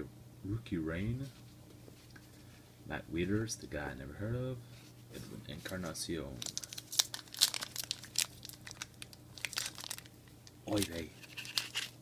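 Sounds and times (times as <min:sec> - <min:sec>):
foil wrapper crinkling and tearing: 0:06.4 - 0:12.0.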